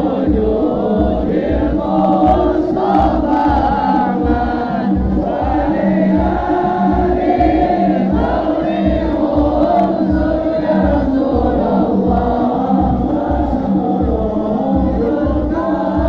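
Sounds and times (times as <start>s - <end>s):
crowd of men singing in unison: 0.0s - 16.0s.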